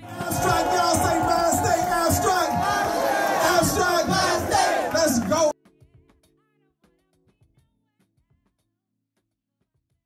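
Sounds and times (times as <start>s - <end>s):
crowd shouting together: 0.0s - 5.5s.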